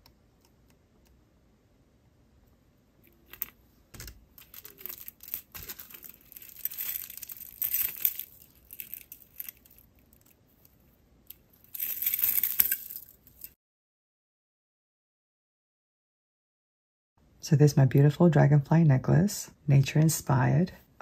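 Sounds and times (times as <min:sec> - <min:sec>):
beads clinking and rattling: 0:03.0 - 0:13.6
beads jingling: 0:04.4 - 0:10.3, 0:11.6 - 0:13.6.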